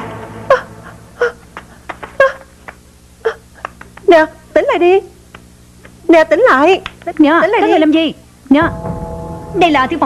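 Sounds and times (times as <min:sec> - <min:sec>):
woman whimpering sobs: 0:00.5 - 0:01.4, 0:02.2 - 0:02.5, 0:03.2 - 0:03.7
tense background music: 0:08.6 - 0:10.0.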